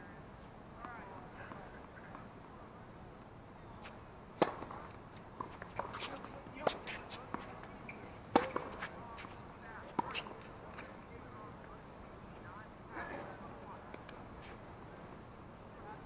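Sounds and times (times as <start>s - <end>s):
rackets striking tennis ball: 3.8s - 10.4s.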